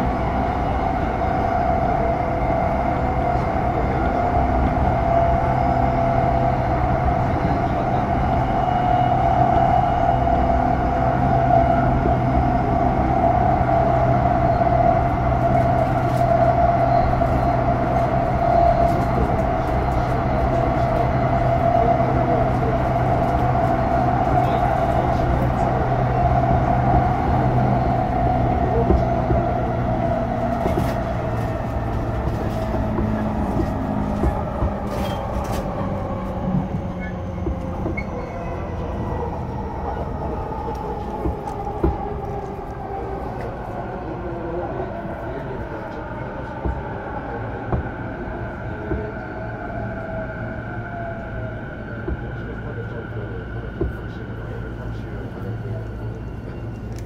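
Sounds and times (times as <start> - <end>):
electric train motor hum: 0.0 - 57.0
running gear rumble: 0.0 - 57.0.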